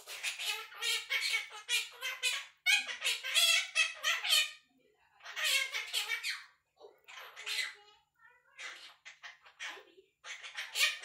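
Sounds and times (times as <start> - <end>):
parrot chattering: 0.0 - 11.0.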